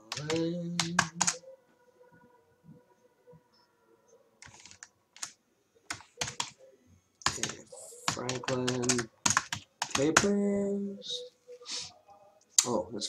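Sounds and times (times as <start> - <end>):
computer keyboard typing: 0.0 - 1.4, 4.4 - 6.6, 7.2 - 10.4.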